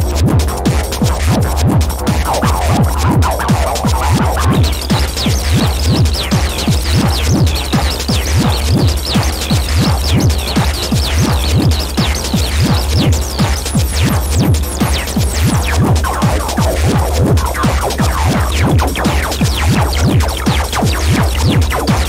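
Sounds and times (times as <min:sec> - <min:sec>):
deep bass drone: 0:00.0 - 0:22.0
low throbbing pulse: 0:00.0 - 0:22.0
high sweeping synth tones: 0:01.4 - 0:09.0, 0:13.8 - 0:22.0.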